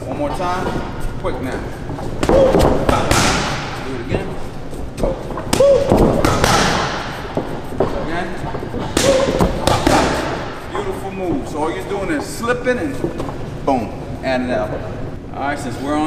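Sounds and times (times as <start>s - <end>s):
boxing gloves punching mitts: 0.1s - 11.4s.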